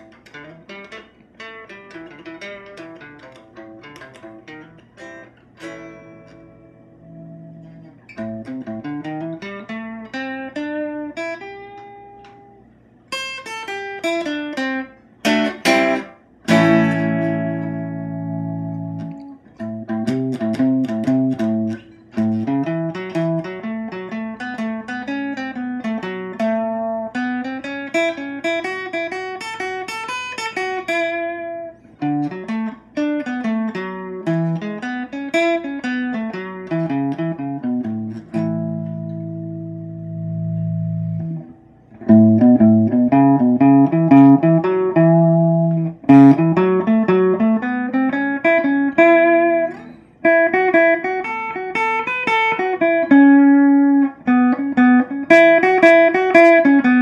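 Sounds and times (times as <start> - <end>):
clean electric guitar: 0.0 - 57.0.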